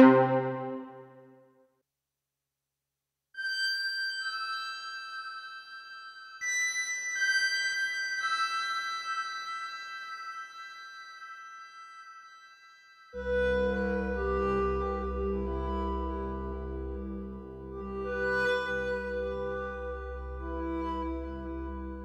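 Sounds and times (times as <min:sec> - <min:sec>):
synthesizer high sustained chords: 0:00.0 - 0:01.1, 0:13.2 - 0:22.0.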